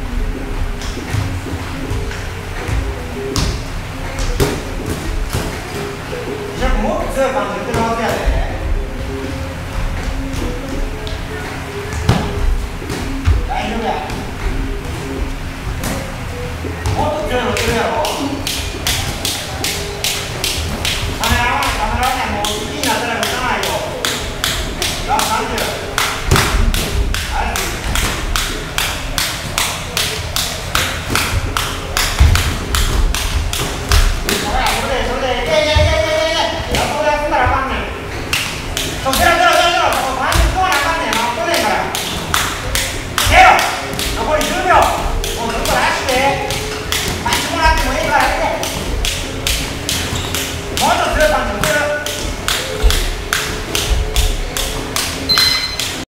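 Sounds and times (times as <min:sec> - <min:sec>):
rhythmic tapping: 0:00.0 - 0:56.0
punches and footwork thuds: 0:00.7 - 0:05.9, 0:11.9 - 0:22.6, 0:24.0 - 0:34.9.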